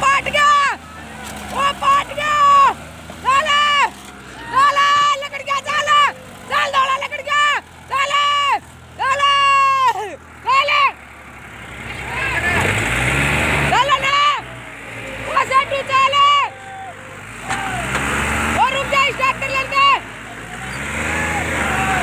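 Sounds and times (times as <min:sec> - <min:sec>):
tractor engine surging under load: 0:00.0 - 0:22.0
high voice in drawn-out phrases: 0:15.2 - 0:16.6.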